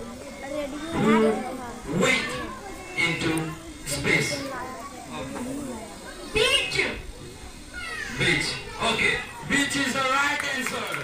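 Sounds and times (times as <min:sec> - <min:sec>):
children calling out: 0:00.0 - 0:09.5
murmur of pupils: 0:00.0 - 0:10.8.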